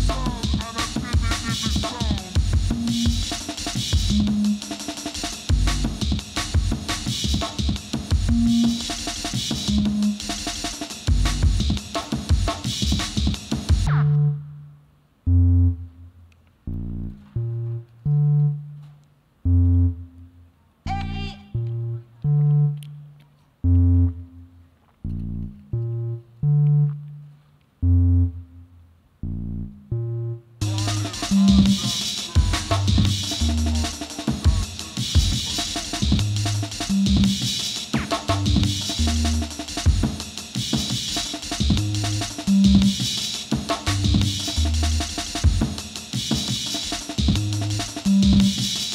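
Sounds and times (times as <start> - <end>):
bass and synth notes: 0.0 - 7.4, 8.2 - 11.8, 13.7 - 40.1, 41.5 - 43.2, 43.8 - 45.6, 47.1 - 48.7
breakbeat drums: 0.0 - 14.2, 30.6 - 48.9.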